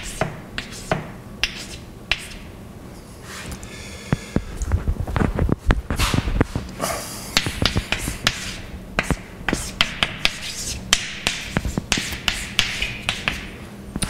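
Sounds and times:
chalk scratching: 0.0 - 2.5, 7.4 - 13.5
chalk tapping on blackboard: 0.0 - 2.5, 7.4 - 13.6.

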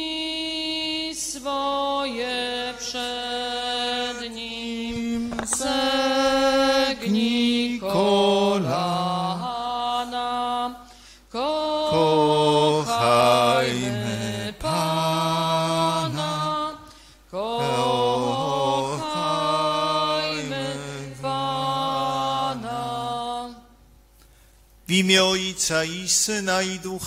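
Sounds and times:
church hymn singing: 0.0 - 23.8.

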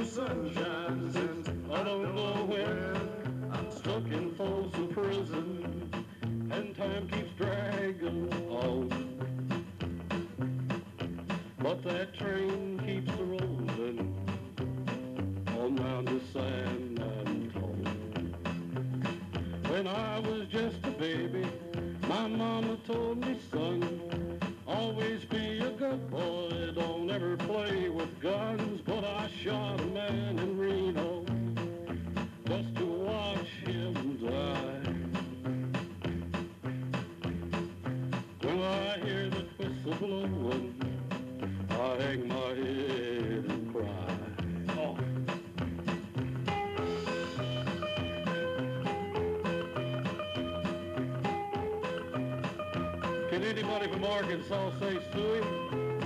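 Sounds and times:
man singing into a microphone: 0.0 - 9.2, 11.5 - 14.2, 15.5 - 18.2, 19.6 - 24.0, 24.7 - 31.4, 32.4 - 35.0, 38.4 - 40.9, 41.7 - 45.2, 53.3 - 55.7
upbeat song through pa system: 0.0 - 56.0.

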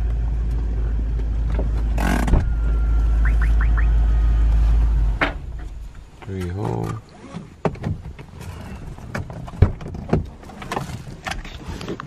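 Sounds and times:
low rumble inside car: 0.0 - 7.1.

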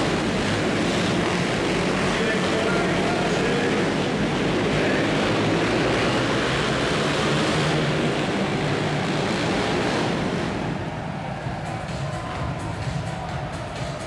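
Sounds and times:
motorcycle engines racing: 0.0 - 14.0.

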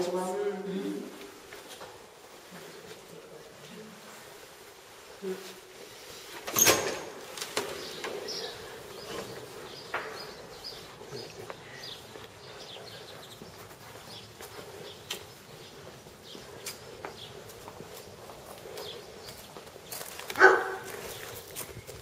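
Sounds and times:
small birds chirping: 7.2 - 22.0.

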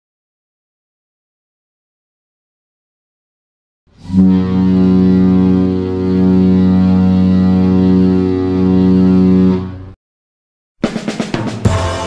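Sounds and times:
ship horn long deep blast: 3.9 - 10.0.

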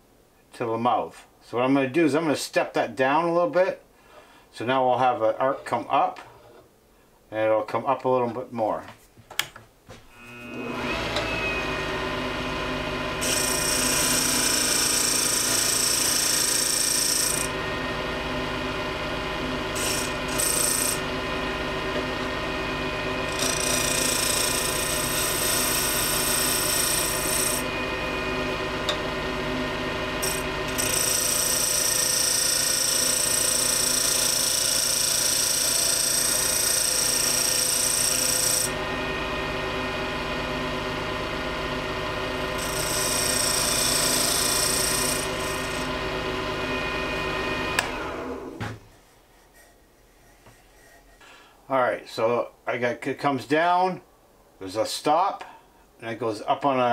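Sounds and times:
wood lathe motor humming: 10.1 - 48.8
turning tool cutting wood: 10.1 - 51.3.

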